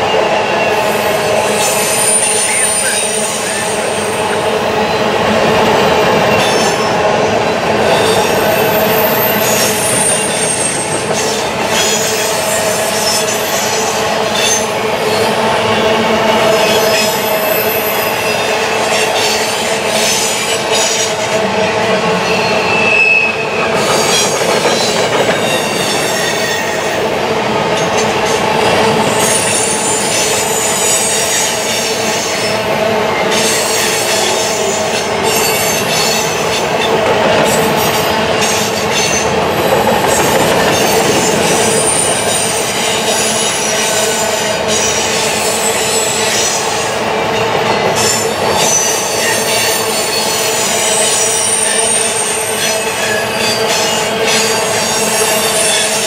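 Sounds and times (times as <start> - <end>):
train wheels rushing on rail: 0.0 - 56.0
high-pitched wheel squeal: 0.6 - 4.4, 7.9 - 14.7, 22.2 - 26.8, 48.0 - 56.0.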